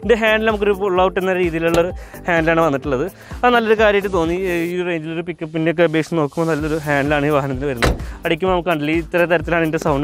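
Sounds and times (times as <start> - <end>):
man talking: 0.0 - 10.0
car door slamming: 1.7 - 2.0, 7.7 - 8.3.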